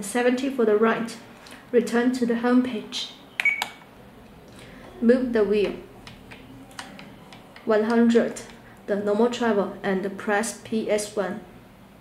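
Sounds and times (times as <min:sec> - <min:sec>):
short electronic beep: 0:03.4 - 0:03.8.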